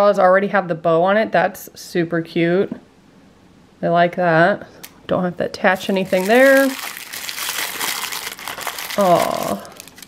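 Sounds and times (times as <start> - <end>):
wrapping paper crinkling: 5.7 - 10.0.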